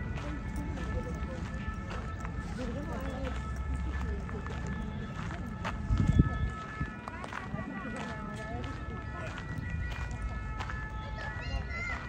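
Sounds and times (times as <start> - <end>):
footsteps: 0.0 - 12.0
people talking indistinctly: 0.0 - 12.0.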